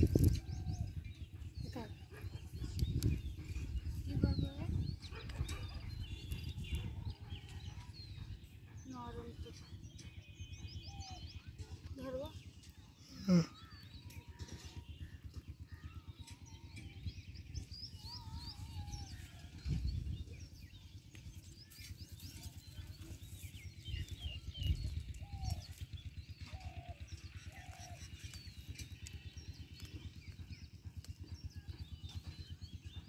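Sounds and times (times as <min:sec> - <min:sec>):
small birds chirping: 0:00.0 - 0:33.0.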